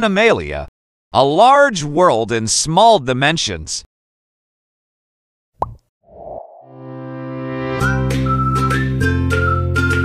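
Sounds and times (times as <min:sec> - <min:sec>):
plop sound effect: 0:05.6 - 0:05.8
background music: 0:06.8 - 0:10.0.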